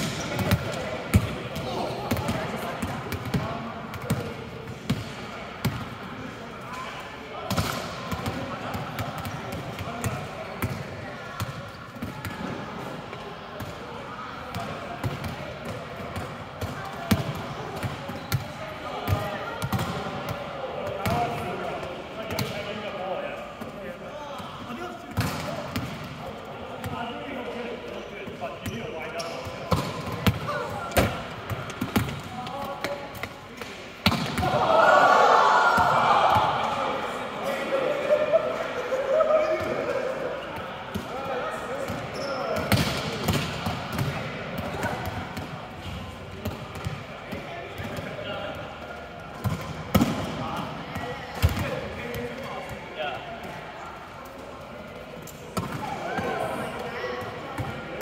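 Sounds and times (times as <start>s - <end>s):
volleyballs being hit and bouncing: 0.0s - 34.8s, 39.4s - 58.0s
players chattering: 0.0s - 58.0s.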